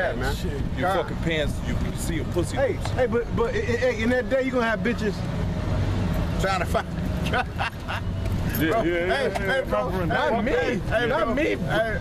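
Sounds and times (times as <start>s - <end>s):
men talking: 0.0s - 12.0s
road traffic rumble: 0.0s - 12.0s.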